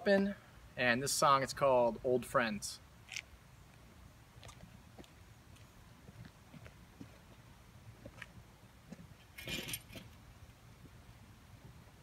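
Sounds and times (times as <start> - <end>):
footsteps on asphalt: 3.0 - 9.1
scraping rustle: 9.2 - 10.2.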